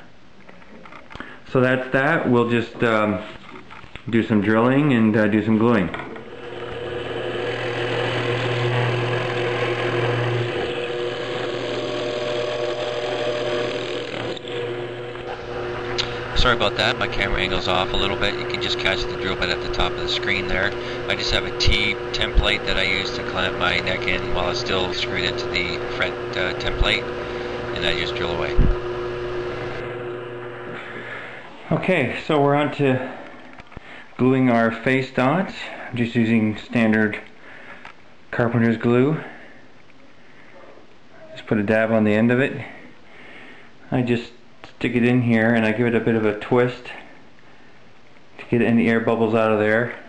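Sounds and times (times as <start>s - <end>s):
drill press motor hum: 6.0s - 31.6s
drill bit cutting wood: 6.2s - 31.4s.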